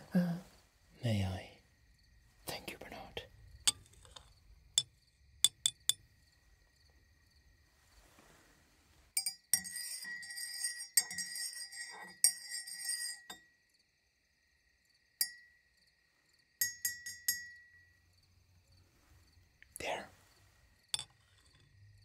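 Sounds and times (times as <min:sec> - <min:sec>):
glass rod clinking in mug: 0:03.7 - 0:06.0, 0:09.2 - 0:13.5, 0:15.2 - 0:15.5, 0:16.6 - 0:17.9, 0:20.9 - 0:21.7.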